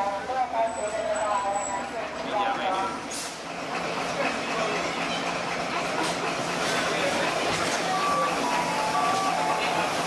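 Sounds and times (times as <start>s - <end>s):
passengers talking: 0.0s - 10.0s
train rumbling: 0.0s - 10.0s.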